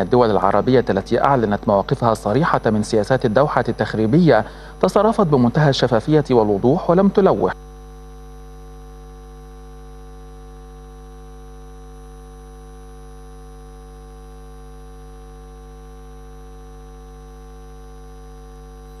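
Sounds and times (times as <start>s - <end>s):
electrical mains hum: 0.0s - 19.0s.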